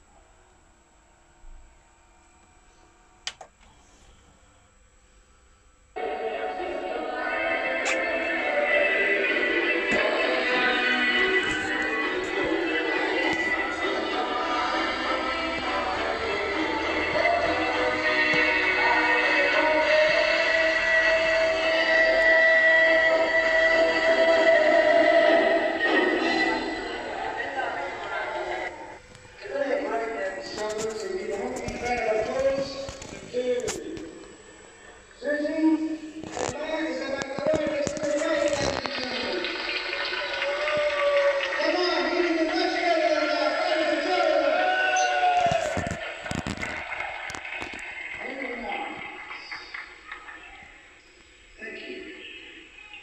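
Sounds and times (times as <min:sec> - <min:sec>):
voices from tv speaker: 0:06.0 - 0:47.0, 0:47.7 - 0:53.0
music from tv speaker: 0:06.0 - 0:53.0.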